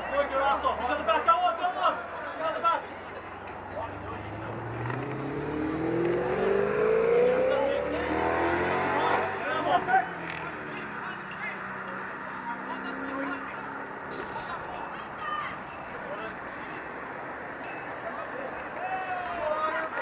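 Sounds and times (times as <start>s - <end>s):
vehicle accelerating past: 4.0s - 13.8s.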